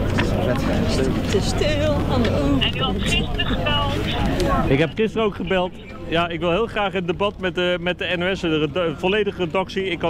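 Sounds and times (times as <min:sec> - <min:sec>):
crowd murmur: 0:00.0 - 0:07.8
voice through phone loudspeaker: 0:02.5 - 0:06.2.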